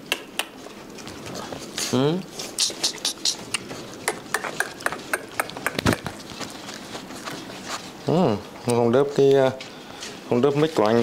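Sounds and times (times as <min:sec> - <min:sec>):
puppies' paws clicking and tapping: 0:00.0 - 0:11.0.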